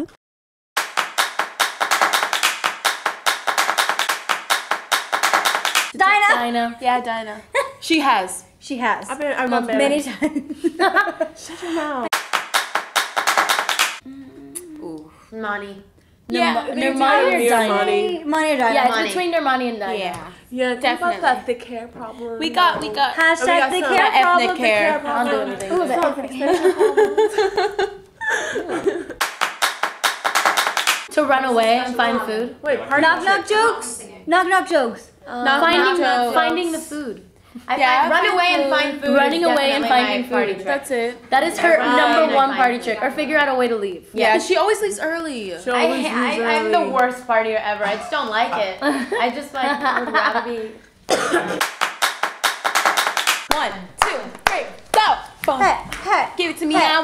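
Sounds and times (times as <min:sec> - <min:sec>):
rapid hand claps: 0:00.8 - 0:06.0, 0:12.1 - 0:14.0, 0:29.2 - 0:31.1, 0:51.6 - 0:56.1.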